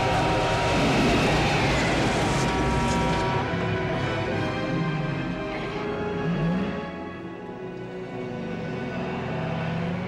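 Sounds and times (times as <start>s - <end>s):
film score with sustained chords: 0.0s - 10.0s.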